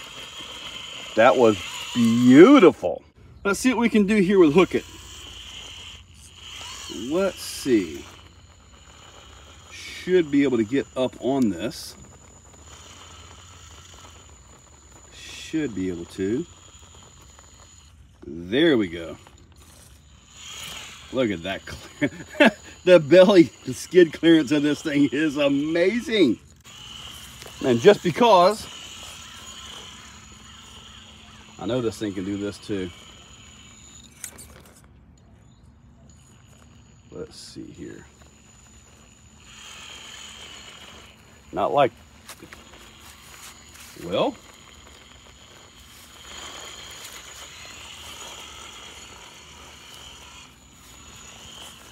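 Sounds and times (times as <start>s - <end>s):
toy car motor and gears whirring: 0.0s - 51.9s.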